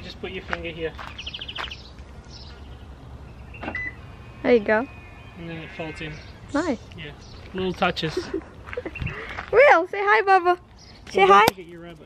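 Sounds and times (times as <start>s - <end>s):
outdoor background noise: 0.0s - 12.0s
bird trilling: 1.1s - 7.6s.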